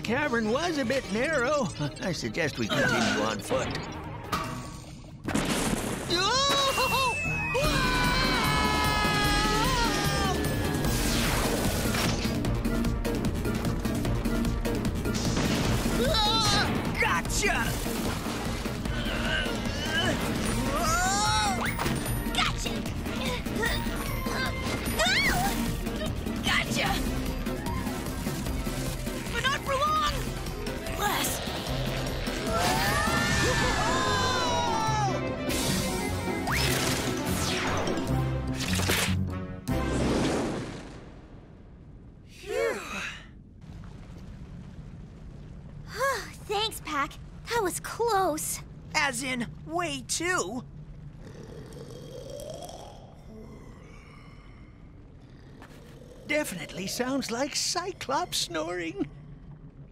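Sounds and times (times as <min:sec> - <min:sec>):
cartoon background music: 0:00.0 - 0:05.5, 0:06.1 - 0:40.3
character yelps and exclamations: 0:06.3 - 0:10.6, 0:16.0 - 0:16.7, 0:32.5 - 0:35.2, 0:42.4 - 0:43.2
cartoon monster snoring: 0:51.2 - 0:53.9, 0:55.2 - 0:56.6.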